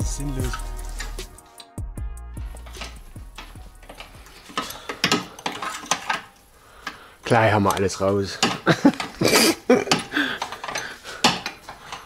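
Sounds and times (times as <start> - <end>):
wrench clicking and clinking: 9.9 - 12.0.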